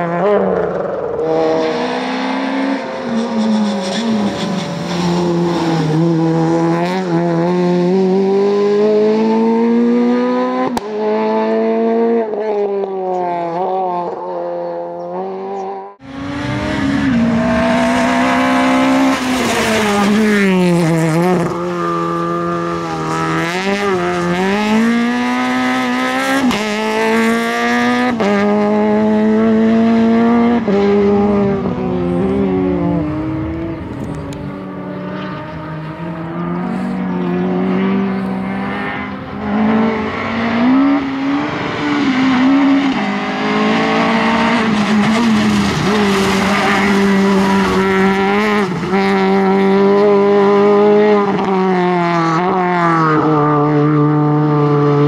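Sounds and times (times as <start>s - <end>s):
rally car engine revving: 0.0s - 55.0s.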